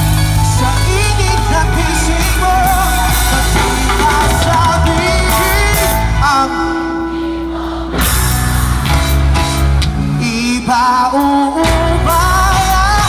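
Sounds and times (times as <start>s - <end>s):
person singing with vibrato: 0.0s - 8.7s, 10.1s - 13.0s
live band over loudspeakers: 0.0s - 13.0s.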